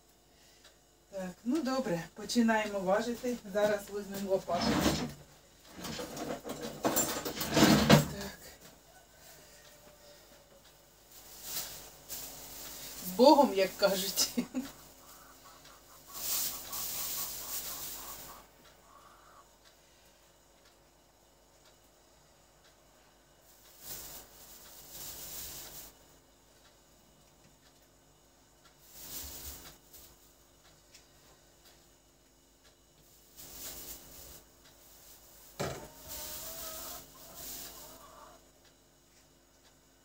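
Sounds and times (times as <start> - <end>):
plastic bag crinkling: 11.1 - 15.2, 16.0 - 18.4, 23.7 - 26.0, 33.2 - 38.0.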